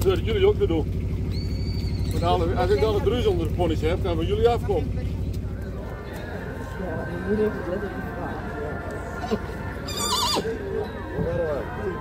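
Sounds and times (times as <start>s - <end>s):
horse whinnying: 9.2s - 10.7s.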